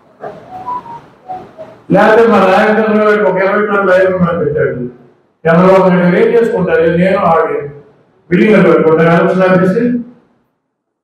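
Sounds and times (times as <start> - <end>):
man speaking into a microphone: 1.8 - 10.2.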